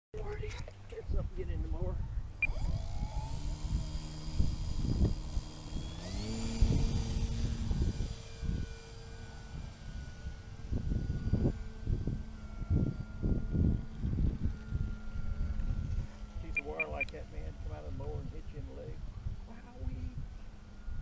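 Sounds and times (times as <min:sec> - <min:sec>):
model plane motor and propeller: 0:00.2 - 0:21.0.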